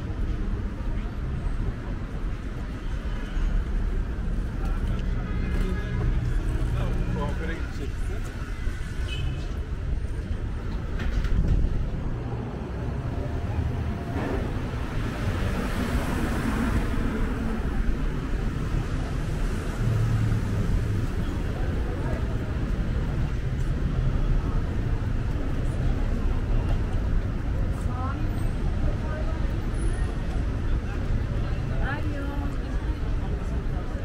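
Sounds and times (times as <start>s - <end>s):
road traffic rumble: 0.0s - 34.0s.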